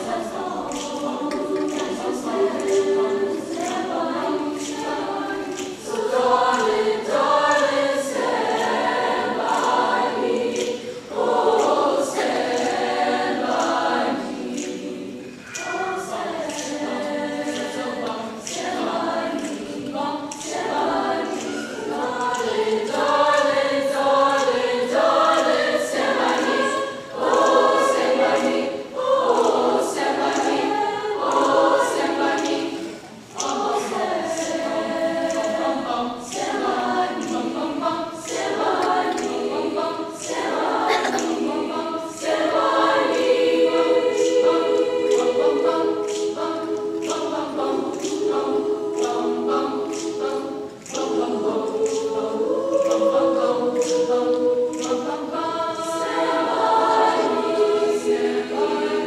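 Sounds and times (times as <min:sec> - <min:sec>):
choir singing: 0:00.0 - 0:59.0.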